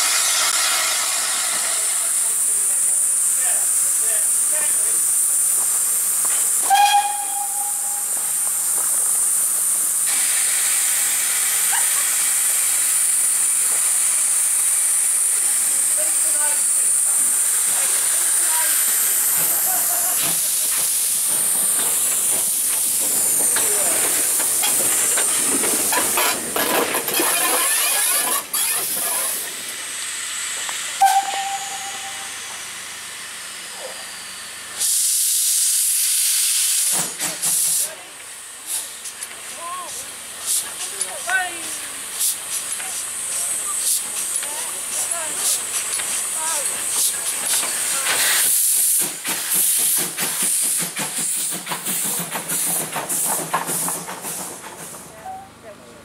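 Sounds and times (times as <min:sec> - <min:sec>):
steam engine hissing: 0:00.0 - 0:55.7
train whistle toots: 0:06.6 - 0:08.4, 0:31.0 - 0:32.5.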